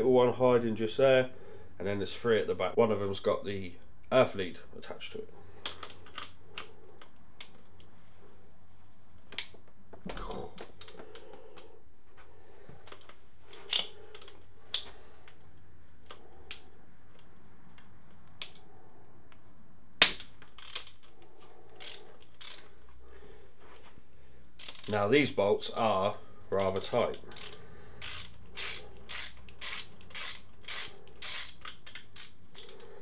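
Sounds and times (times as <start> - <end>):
wrench ratcheting: 13.7 - 14.8, 20.2 - 21.1, 21.8 - 22.7, 24.6 - 25.1, 26.6 - 33.0.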